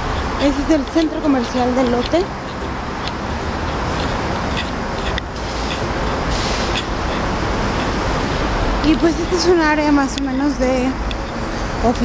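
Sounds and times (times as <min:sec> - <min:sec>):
city road traffic: 0:00.0 - 0:12.0.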